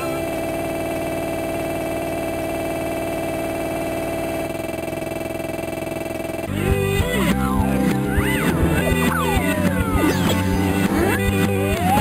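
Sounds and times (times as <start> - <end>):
buzzing electronic chord: 0.0 - 1.8, 6.2 - 12.0
busy passage with sliding pitches: 6.5 - 12.0.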